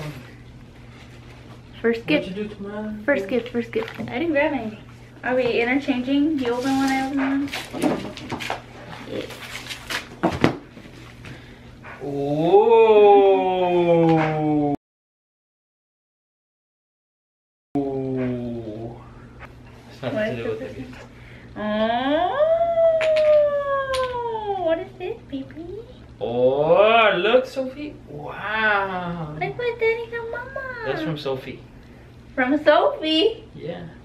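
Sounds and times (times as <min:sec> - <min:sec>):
gift wrapping rustling and crinkling: 0:06.4 - 0:11.2.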